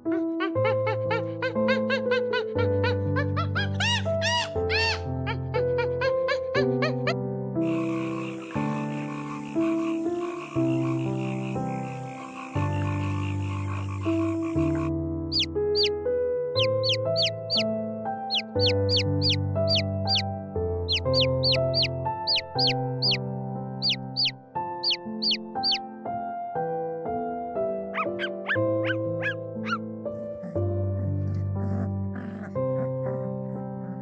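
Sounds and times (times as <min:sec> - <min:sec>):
calm instrumental music: 0:00.0 - 0:34.0.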